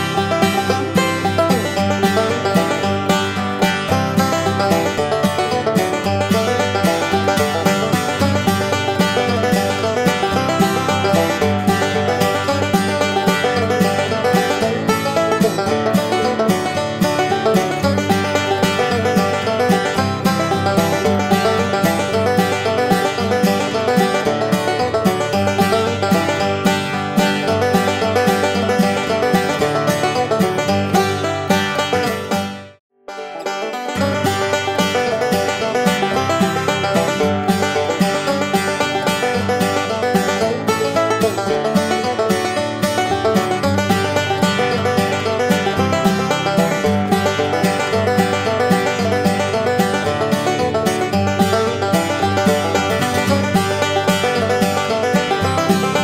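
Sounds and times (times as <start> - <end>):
country plucked-string tune: 0.0 - 56.0.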